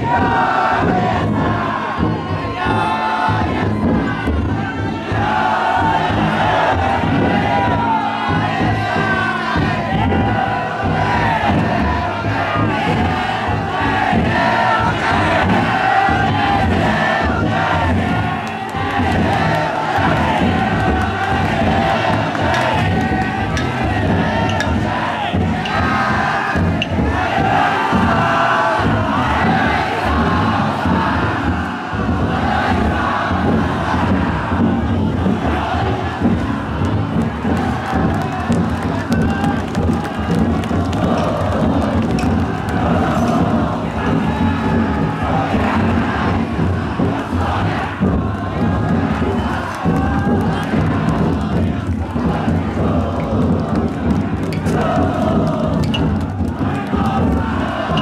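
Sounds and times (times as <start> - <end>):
crowd shouting together: 0.0 - 58.0
taiko drum beating: 0.0 - 58.0.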